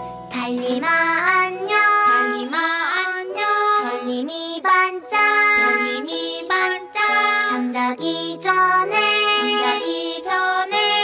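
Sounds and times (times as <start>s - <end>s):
child-like voice singing: 0.7s - 11.0s.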